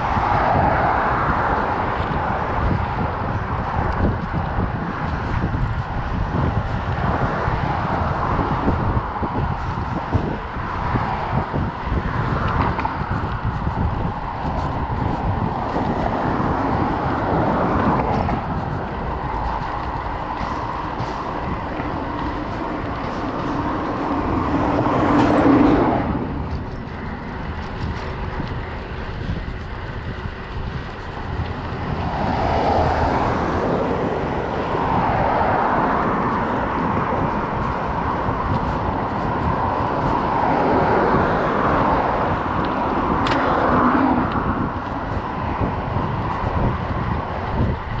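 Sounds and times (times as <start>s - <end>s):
vehicles passing: 0.0s - 48.0s
wind and road noise: 0.0s - 48.0s.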